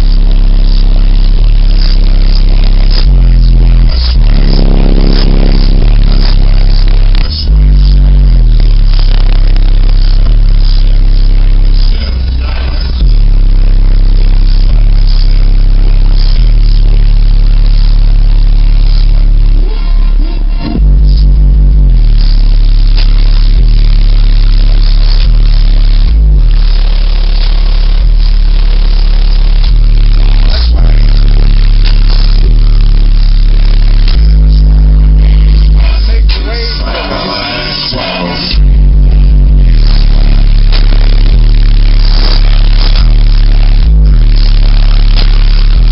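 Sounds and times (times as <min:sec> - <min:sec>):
loud bass-heavy music on subwoofer: 0:00.0 - 0:45.9.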